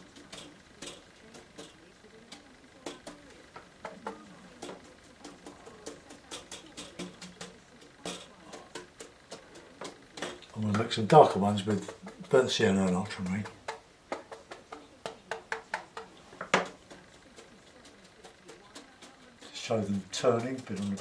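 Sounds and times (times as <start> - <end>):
brush tapping on paper: 0.0 - 21.0.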